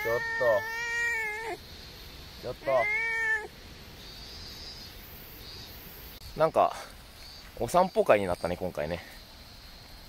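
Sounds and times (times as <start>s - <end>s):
cat meowing: 0.0s - 1.6s, 2.5s - 3.5s.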